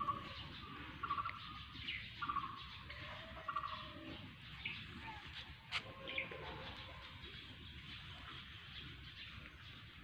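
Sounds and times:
faint bird chirps: 0.0s - 9.9s.

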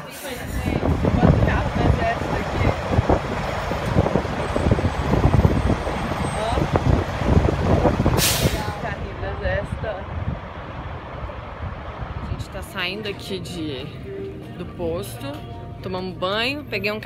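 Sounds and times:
diesel trucks rumbling past: 0.0s - 17.0s
trailers rattling: 0.0s - 17.0s
air-brake hiss: 8.2s - 8.8s.

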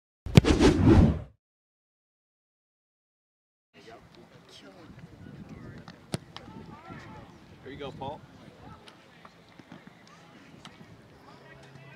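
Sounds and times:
sharp thud: 0.3s - 1.3s
whoosh: 0.3s - 1.3s.

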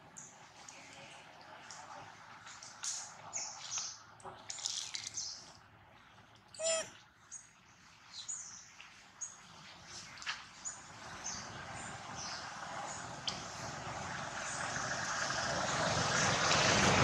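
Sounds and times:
short pitched animal call: 6.6s - 7.0s.

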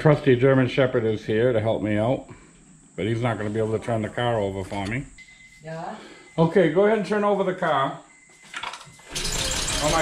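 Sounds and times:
car engine cranking: 9.1s - 10.0s.

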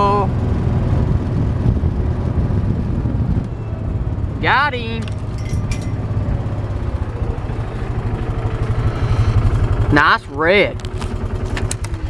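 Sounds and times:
utility vehicle engine throbbing: 0.0s - 12.0s.

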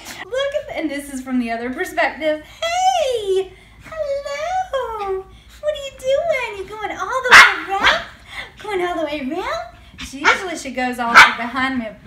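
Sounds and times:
small dog barking: 7.3s - 8.1s, 11.1s - 11.4s.

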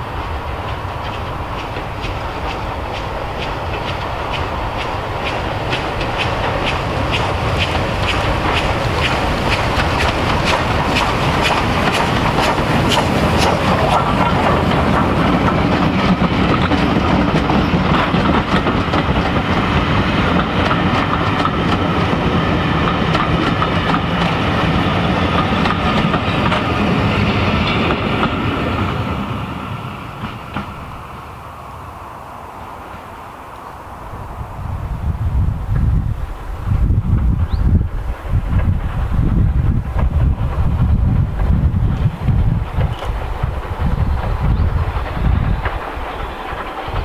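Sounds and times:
train wheels clattering on rails: 0.0s - 31.5s, 35.7s - 47.0s
steam locomotive beats: 0.0s - 47.0s.

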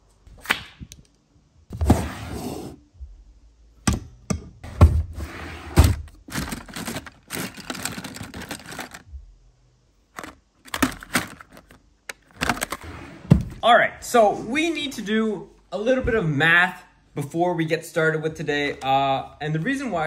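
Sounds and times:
rustling and sliding: 5.0s - 9.0s
pens clicking and clattering: 6.3s - 9.0s.

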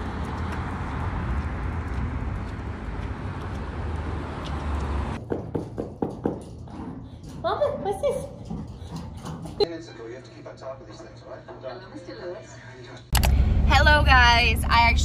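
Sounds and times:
street noise with low rumble: 0.0s - 5.3s, 13.1s - 15.0s
knocks and thumps: 5.2s - 9.7s.

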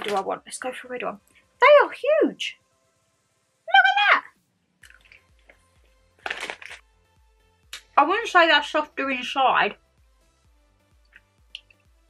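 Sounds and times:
person chewing and crunching: 4.8s - 6.8s
background music with bass line: 4.8s - 12.0s.

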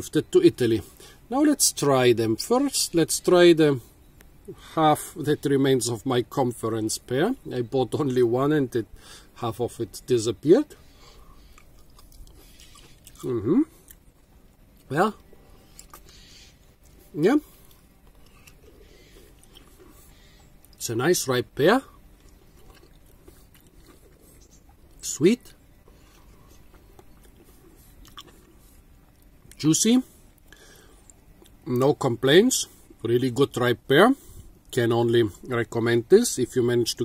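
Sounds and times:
faint chewing of pear: 6.5s - 32.0s.

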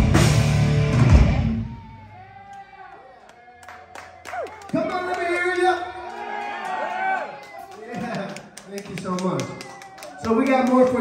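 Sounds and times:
thrash metal band playing live: 0.0s - 1.6s.

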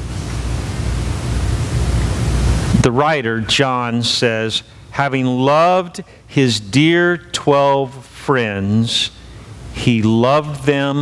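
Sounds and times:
steady rushing noise: 0.0s - 5.1s
man's voice: 2.8s - 9.2s, 9.8s - 11.0s.

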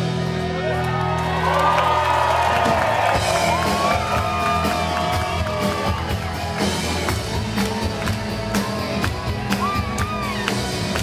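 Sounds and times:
drums: 0.0s - 11.0s
keyboards: 0.0s - 11.0s
live rock band: 0.0s - 11.0s
crowd whooping: 0.4s - 11.0s.

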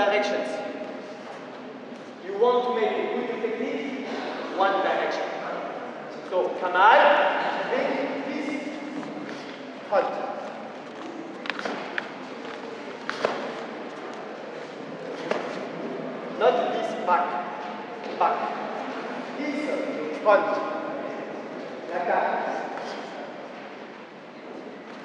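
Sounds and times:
man speaking in echoing hall: 0.0s - 1.3s, 2.2s - 23.8s.

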